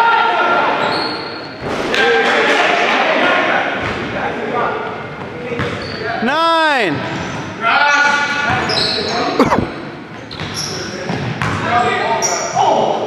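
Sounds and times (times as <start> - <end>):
shoe squeaks: 0.8 - 1.6, 5.6 - 6.2, 8.6 - 11.0
players calling out: 6.2 - 7.0, 9.4 - 9.8.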